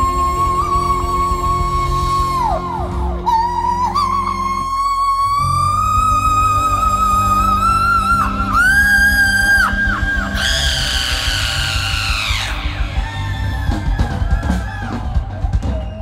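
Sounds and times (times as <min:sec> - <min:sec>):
live rock band playing: 0:00.0 - 0:16.0
long high yell: 0:02.2 - 0:15.2.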